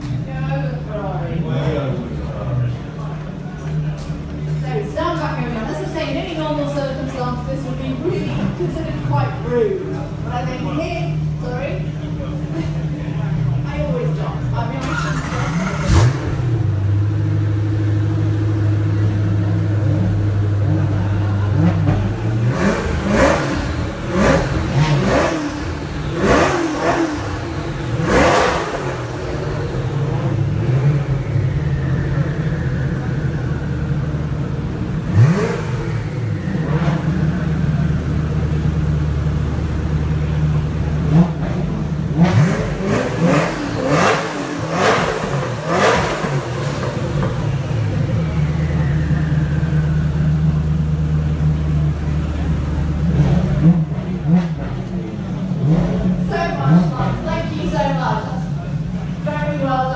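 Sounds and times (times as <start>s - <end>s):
car engine idling: 0.0s - 59.9s
engine revving in sharp blips: 14.8s - 57.9s.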